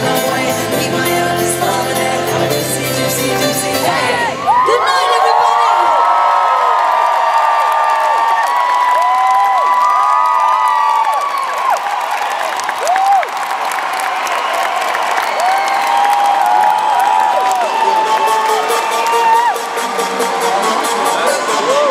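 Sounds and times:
crowd cheering and screaming: 0:03.6 - 0:21.9
crowd clapping: 0:04.5 - 0:21.9.

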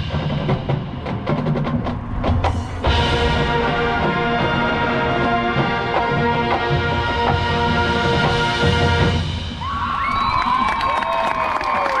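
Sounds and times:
crowd shouting and whooping: 0:09.6 - 0:12.0
people clapping: 0:09.9 - 0:12.0.

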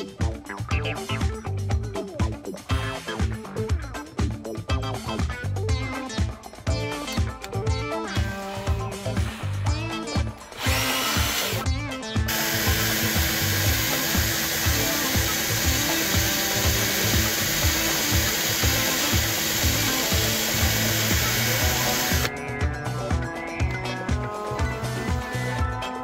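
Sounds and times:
background music: 0:00.0 - 0:26.0
power drill spinning: 0:10.5 - 0:11.6, 0:12.3 - 0:22.3.

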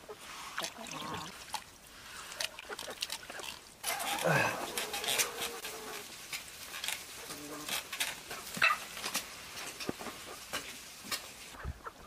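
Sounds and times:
rustling noise: 0:03.9 - 0:12.0.

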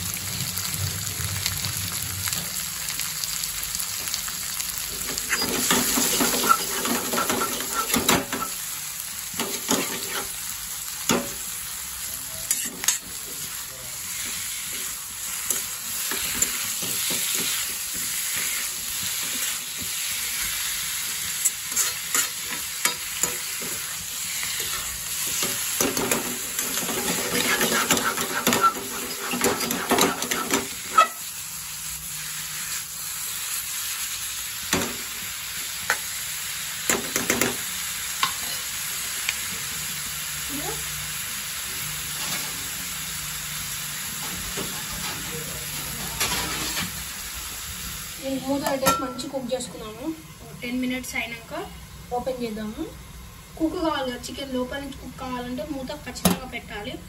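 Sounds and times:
food sizzling in pan: 0:00.0 - 0:57.0
spatula scraping pan: 0:05.1 - 0:08.6, 0:09.4 - 0:10.4, 0:14.2 - 0:31.3, 0:46.2 - 0:47.0.

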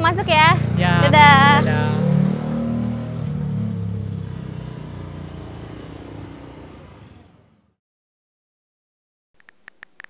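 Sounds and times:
motor scooter engine pulling away: 0:00.1 - 0:07.8.

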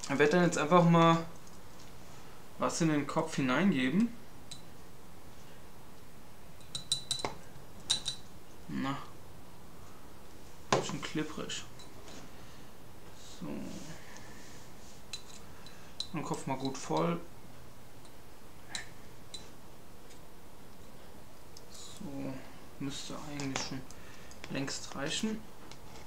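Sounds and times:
clinks of glass and clay: 0:06.6 - 0:08.3.

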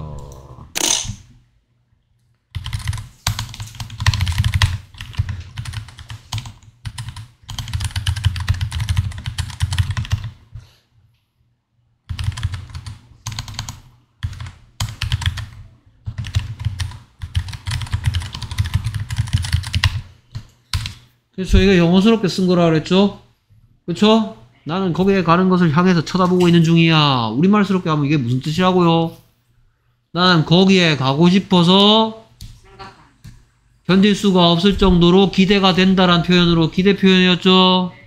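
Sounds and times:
typing on computer keyboard: 0:02.5 - 0:10.4, 0:12.1 - 0:21.0.

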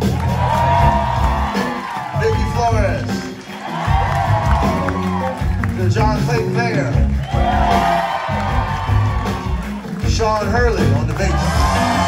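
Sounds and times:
crowd cheering and whooping: 0:00.0 - 0:06.0, 0:07.1 - 0:10.1, 0:11.0 - 0:12.0
blues-rock band playing: 0:00.0 - 0:12.0.

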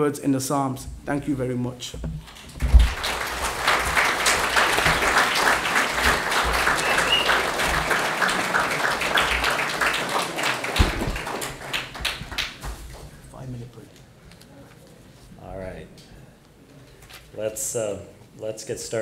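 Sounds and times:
audience applauding: 0:02.3 - 0:12.7.

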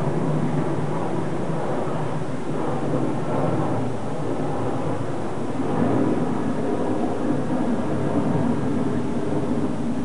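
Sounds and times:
jet engines roaring overhead: 0:00.0 - 0:10.0.

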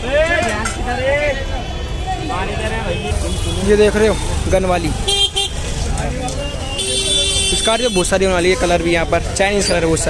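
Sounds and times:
voices of street market: 0:00.0 - 0:10.0
vehicle horn honk: 0:05.1 - 0:05.6, 0:06.7 - 0:08.1.

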